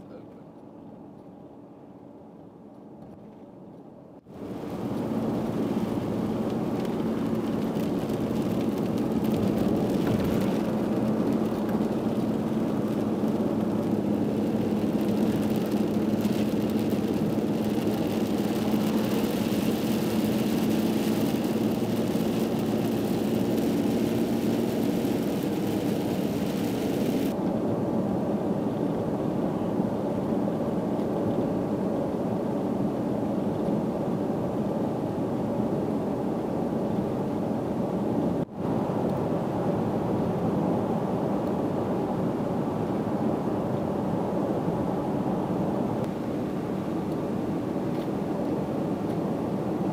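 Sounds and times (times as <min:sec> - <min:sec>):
car engine hum: 0:00.0 - 0:36.0
tyres hissing on wet road: 0:04.4 - 0:27.4.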